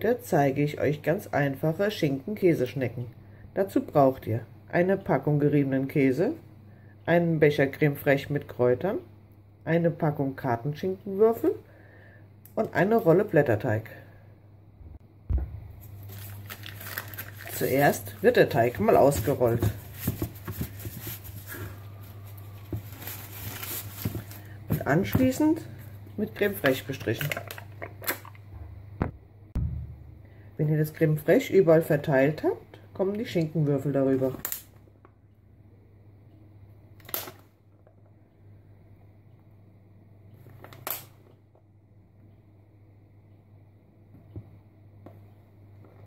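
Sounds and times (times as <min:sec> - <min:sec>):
steady low hum: 0:00.0 - 0:40.5, 0:41.1 - 0:46.0
low hum: 0:14.0 - 0:30.6
plastic pack crinkling: 0:15.7 - 0:25.6, 0:26.4 - 0:28.4
paper rustling: 0:15.8 - 0:25.0.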